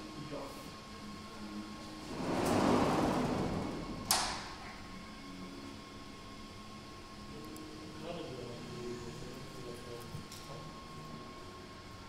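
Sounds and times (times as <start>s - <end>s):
heavy sliding door rumbling: 1.8s - 5.0s.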